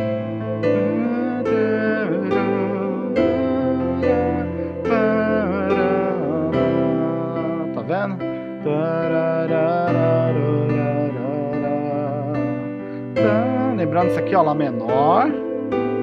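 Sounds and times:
electronic keyboard chords: 0.0 - 16.0
wavering melody line: 0.0 - 16.0.

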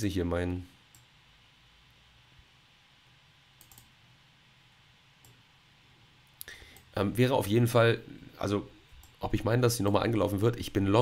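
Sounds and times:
room hiss: 0.0 - 11.0
computer mouse clicks: 3.6 - 3.9.

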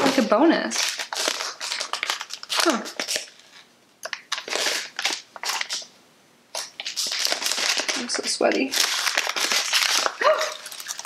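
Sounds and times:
packaging crinkling: 0.0 - 5.9, 6.5 - 11.0.

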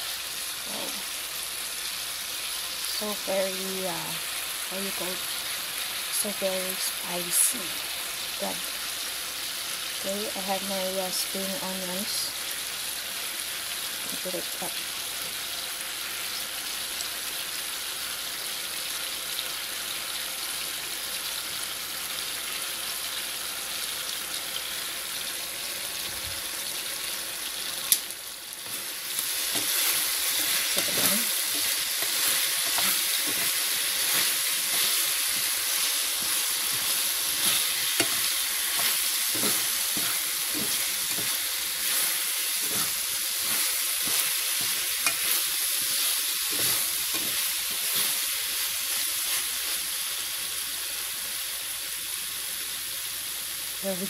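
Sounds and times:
chicken sizzling in frying pan: 0.0 - 54.0
spatula scraping pan: 28.6 - 48.2.

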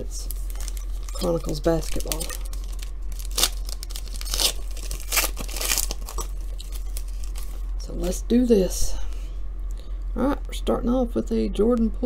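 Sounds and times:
foil wrapper rustling: 0.2 - 8.2
foil wrapper tearing: 0.3 - 7.6.

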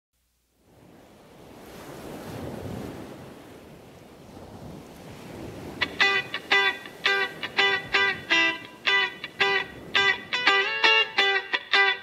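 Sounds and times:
sea surf washing in: 0.6 - 12.0
strummed guitar chord: 5.8 - 12.0.

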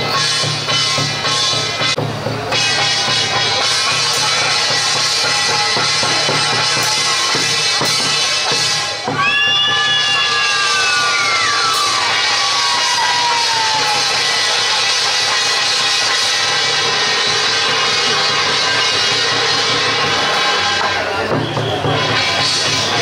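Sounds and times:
procession music with drums and cymbals: 0.0 - 23.0.

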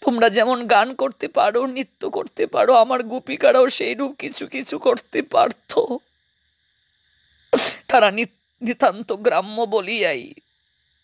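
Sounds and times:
breath hiss into microphone: 6.3 - 8.0.

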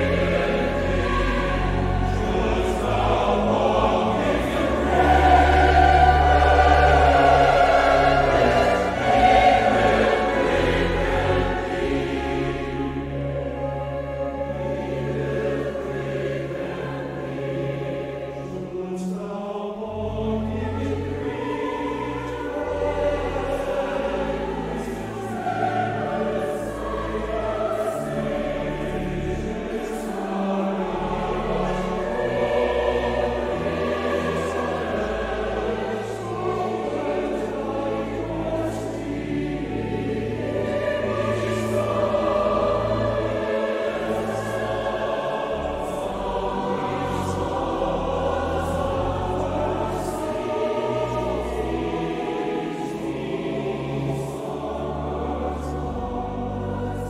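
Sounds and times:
mixed choir singing: 0.0 - 57.0.

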